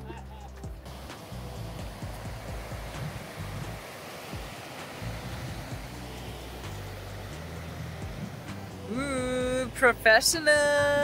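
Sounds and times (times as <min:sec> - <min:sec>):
background music: 0:00.0 - 0:11.0
river rapids rushing: 0:00.9 - 0:11.0.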